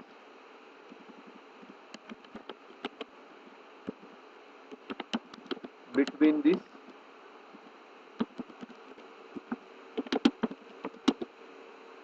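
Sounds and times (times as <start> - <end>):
steady background hiss: 0.0 - 12.0
keyboard keys clicking: 1.9 - 3.1, 4.7 - 6.6, 8.2 - 11.3.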